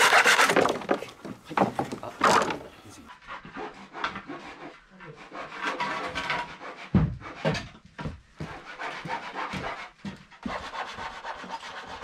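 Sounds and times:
hand saw cutting wood: 0.0 - 1.4, 2.2 - 7.8, 8.4 - 12.0.

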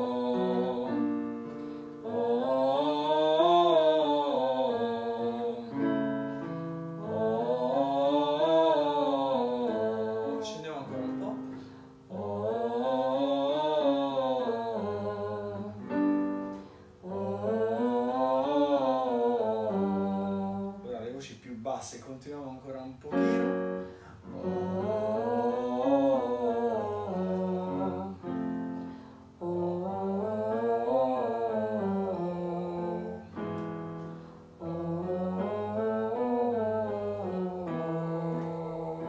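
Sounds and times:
woman singing vocal scale: 0.0 - 21.0, 23.1 - 39.0.

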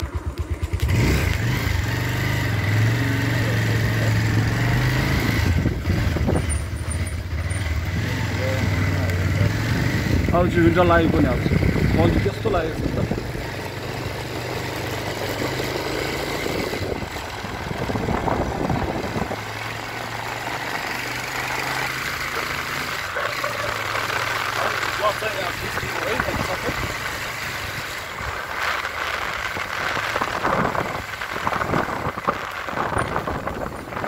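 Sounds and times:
people talking: 8.0 - 9.7, 10.3 - 13.2, 24.5 - 26.9.

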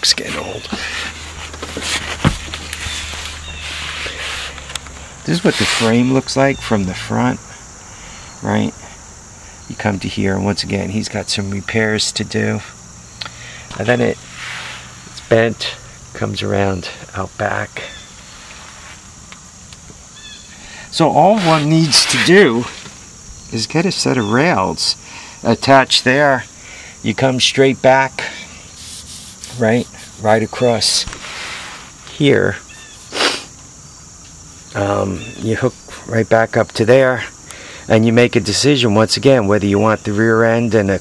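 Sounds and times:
rustling and scuffing: 0.1 - 6.1, 18.2 - 19.2, 21.0 - 23.1, 28.7 - 32.1
high-pitched insect chirring: 2.5 - 31.0, 31.9 - 41.0
faint bird chirp: 2.7 - 4.2, 17.8 - 18.4, 20.1 - 20.8, 32.6 - 33.2, 34.8 - 36.0.

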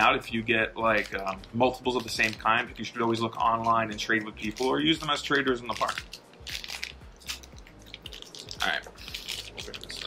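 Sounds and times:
wrapper crinkling and crackling: 0.0 - 10.0.

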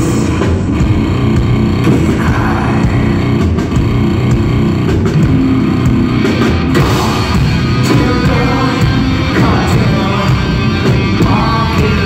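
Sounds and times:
bass guitar: 0.0 - 12.0
distorted electric guitar: 0.0 - 12.0
drum kit with cymbals: 0.0 - 12.0.

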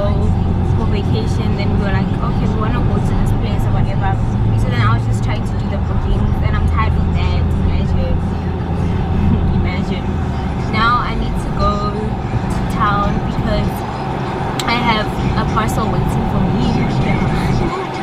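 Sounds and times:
woman talking: 0.0 - 8.2, 9.3 - 10.1, 10.7 - 13.8, 14.6 - 18.0
car engine rumble and road noise: 0.0 - 18.0.

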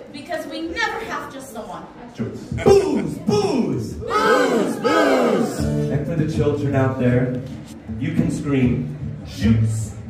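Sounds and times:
crowd shouting in unison: 2.6 - 5.8.

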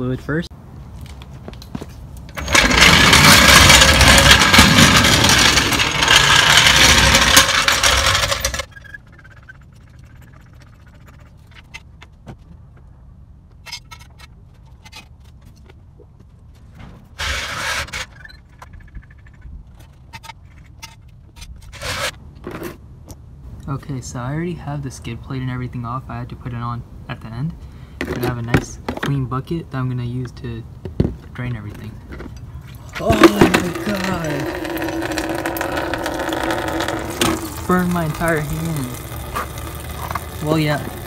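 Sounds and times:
floor jack rolling across concrete: 2.3 - 9.0, 17.1 - 18.3, 21.6 - 22.7, 32.1 - 41.0
short scrapes: 19.8 - 22.8.

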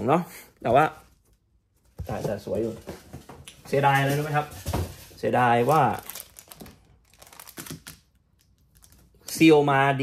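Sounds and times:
man talking: 0.0 - 1.0, 2.0 - 3.0, 3.6 - 6.1, 9.3 - 10.0
shrink-wrap crinkling: 3.8 - 9.6.

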